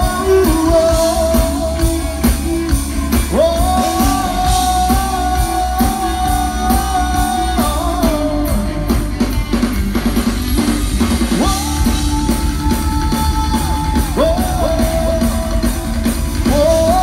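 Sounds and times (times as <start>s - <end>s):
man singing long held notes: 0.0s - 2.5s, 3.2s - 8.9s, 11.3s - 17.0s
live band playing: 0.0s - 17.0s.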